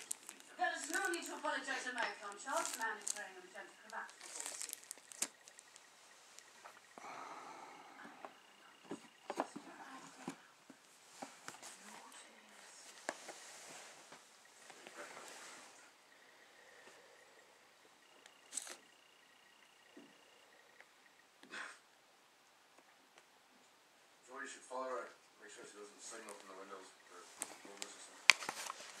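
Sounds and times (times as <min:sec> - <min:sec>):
cardboard and plastic packaging handled: 0:00.0 - 0:06.9, 0:08.5 - 0:15.5, 0:18.4 - 0:18.8, 0:26.0 - 0:29.0
plastic bag rustling: 0:00.0 - 0:06.9, 0:27.1 - 0:29.0.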